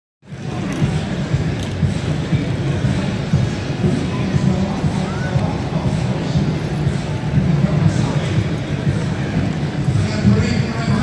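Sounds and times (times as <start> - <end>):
city street traffic rumble: 0.2 - 11.0.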